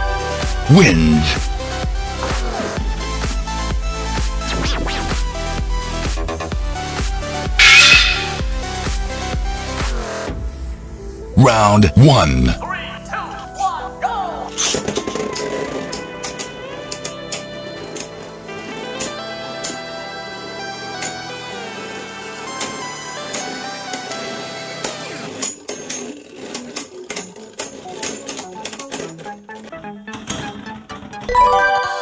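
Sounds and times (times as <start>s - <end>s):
background music: 0.0s - 23.2s, 29.3s - 32.0s.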